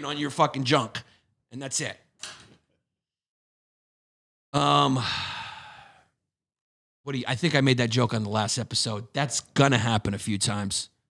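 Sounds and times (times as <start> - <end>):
man's breathy sigh: 4.6 - 6.1.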